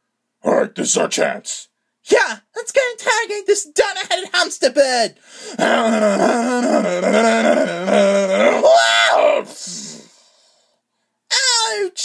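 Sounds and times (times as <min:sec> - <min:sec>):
person crying out in pain: 0:05.5 - 0:10.1.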